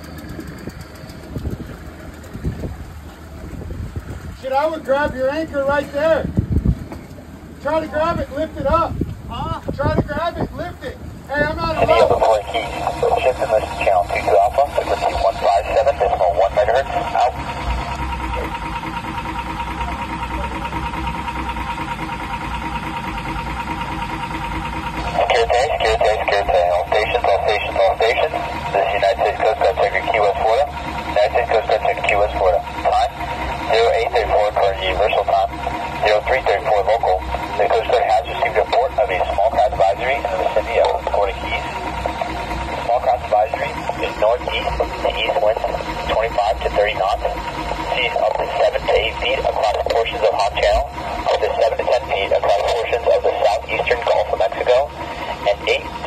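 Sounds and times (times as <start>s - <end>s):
man speaking over radio speaker: 7.6s - 18.6s, 25.0s - 56.0s
radio static hiss: 11.8s - 17.6s, 25.0s - 56.0s.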